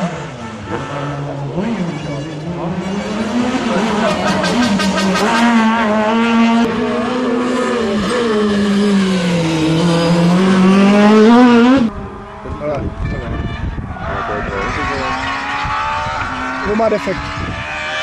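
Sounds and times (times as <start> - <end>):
rally car engine passing: 0.0 - 18.0.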